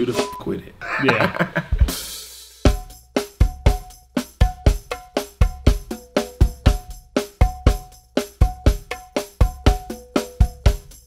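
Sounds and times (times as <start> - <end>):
funk drum groove: 1.6 - 11.0.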